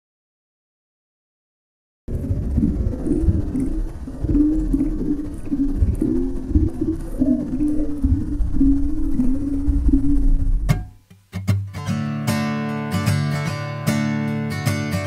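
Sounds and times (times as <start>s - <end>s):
low rumble of water: 2.1s - 10.7s
muffled underwater voice sounds: 2.1s - 10.7s.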